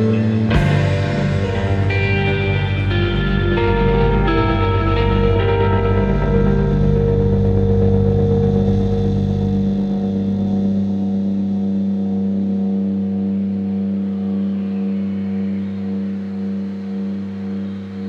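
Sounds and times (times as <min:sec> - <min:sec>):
deep bass note: 0:00.0 - 0:16.0
droning guitar chord: 0:00.0 - 0:18.0.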